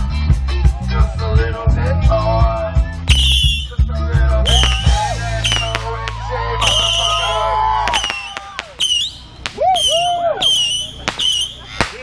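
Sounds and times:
whistling fireworks shrieking: 3.1 - 3.8, 4.5 - 12.0
firework pops: 4.5 - 7.2, 7.9 - 12.0.

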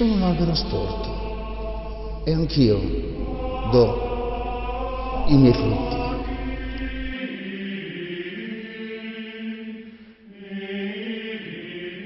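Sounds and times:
choir chanting long notes: 0.0 - 12.0.

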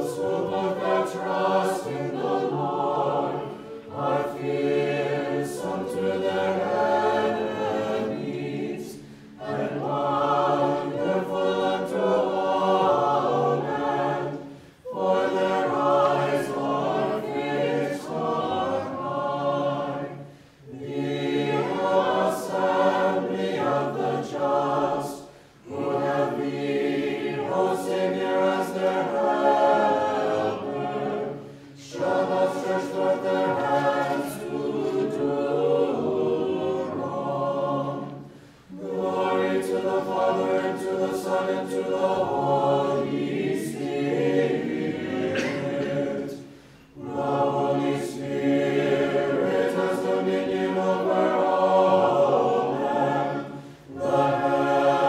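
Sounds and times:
unaccompanied choir singing a hymn: 0.0 - 55.0.

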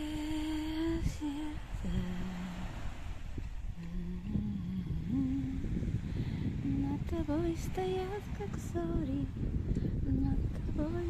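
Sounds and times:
wind rumble on microphone: 0.0 - 11.0
woman humming a slow tune: 0.0 - 11.0.

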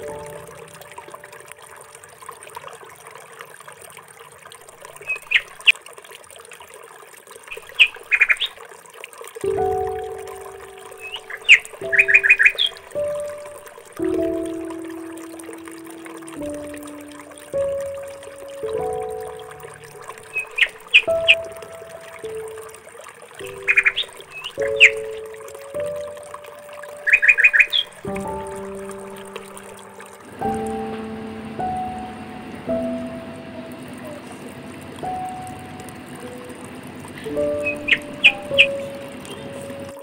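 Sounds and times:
slow instrumental music: 0.0 - 2.1, 9.4 - 40.0
birds chirping: 4.8 - 5.7, 7.5 - 8.6, 9.6 - 40.0.

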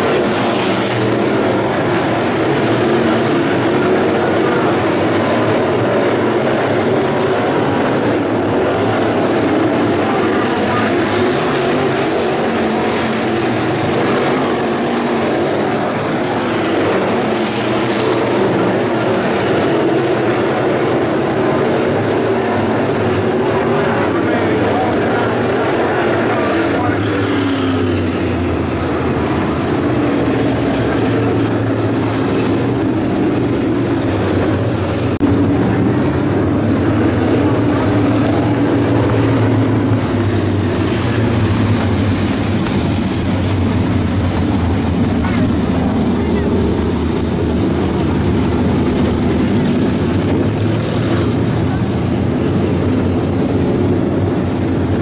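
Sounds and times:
race car engines droning: 0.0 - 55.0.

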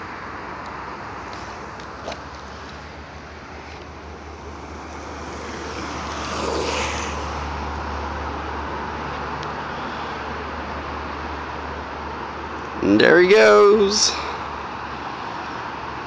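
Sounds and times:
longboard wheels rolling on asphalt: 0.0 - 13.0, 14.4 - 16.0.

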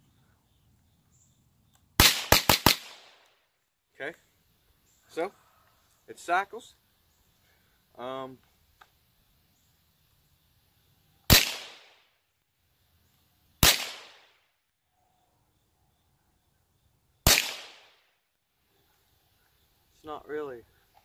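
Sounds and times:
rifle gunshots with echo: 2.0 - 3.2, 11.3 - 12.0, 13.6 - 14.3, 17.2 - 18.0.

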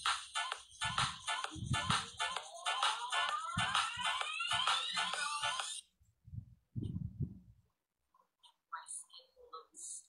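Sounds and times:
electronic music with steady beat: 0.0 - 5.8.

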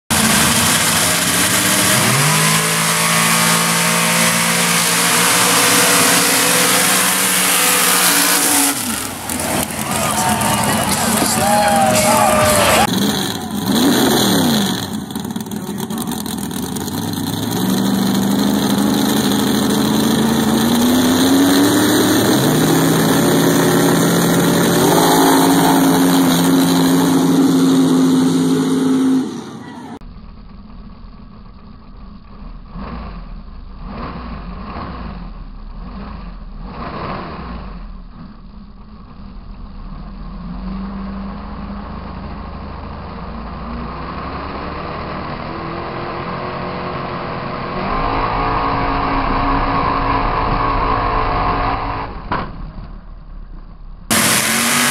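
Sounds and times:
car engine revving hard: 0.1 - 29.6, 32.7 - 37.9, 43.6 - 52.2, 54.1 - 54.9
muffled engine note: 47.8 - 54.9.

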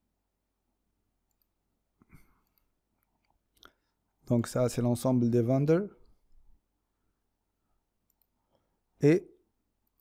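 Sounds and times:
soft clicks: 1.2 - 1.6, 8.0 - 8.7, 9.8 - 10.0.

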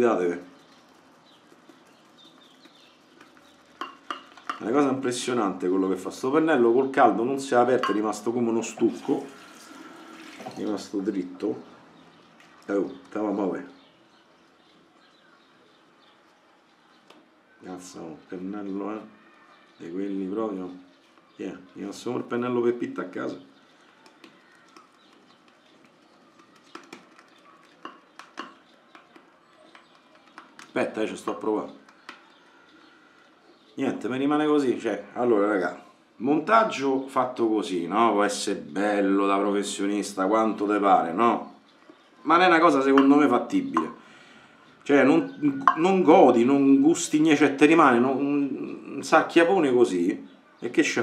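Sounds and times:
shaving brush tapping in bowl: 3.2 - 4.7, 7.8 - 8.1, 26.6 - 30.8, 42.9 - 44.0, 45.6 - 46.0.

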